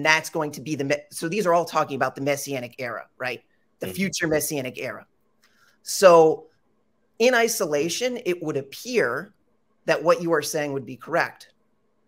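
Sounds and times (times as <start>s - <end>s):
person speaking a word: 3.8s - 4.4s.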